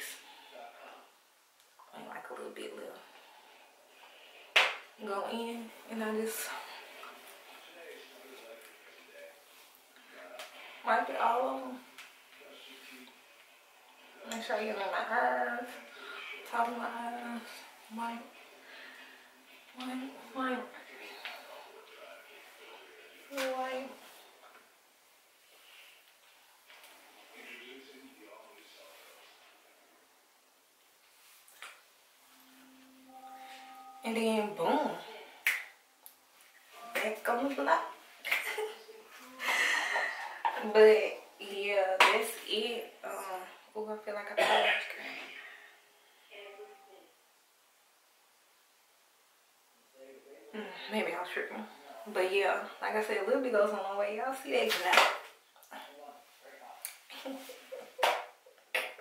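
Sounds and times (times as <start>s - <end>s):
faint steady hum: 0.0s - 59.0s.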